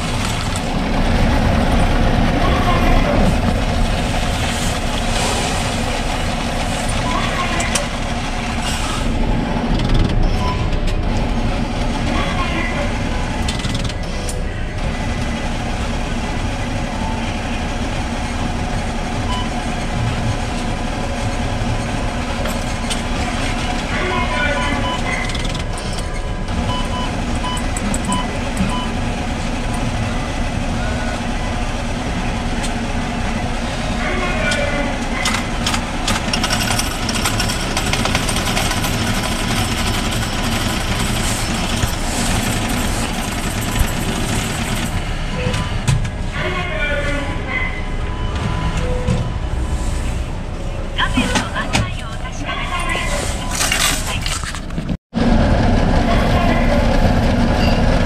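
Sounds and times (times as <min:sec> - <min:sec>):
coin counting machine rattle: 0:35.2 - 0:45.1, 0:52.9 - 0:54.8.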